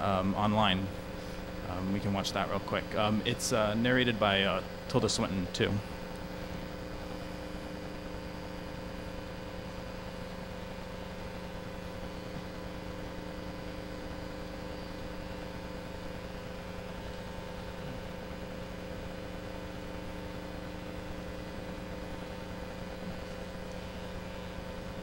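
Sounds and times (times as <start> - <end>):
electrical hum: 0.0 - 25.0.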